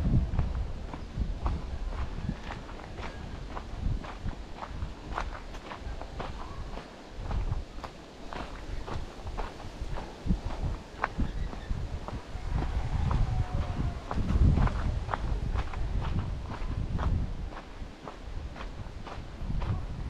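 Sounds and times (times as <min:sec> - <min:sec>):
footsteps on gravel: 0:00.3 - 0:19.9.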